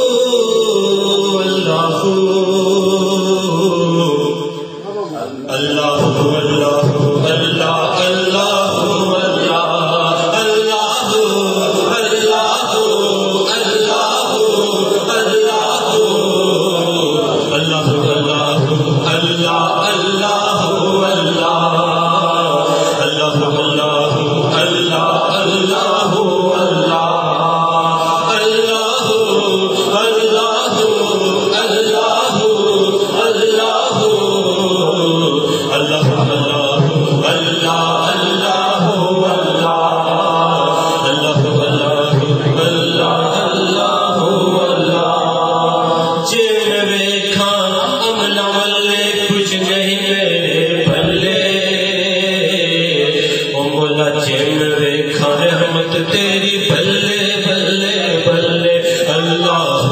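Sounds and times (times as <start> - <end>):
man singing into a microphone: 0.0 - 59.9.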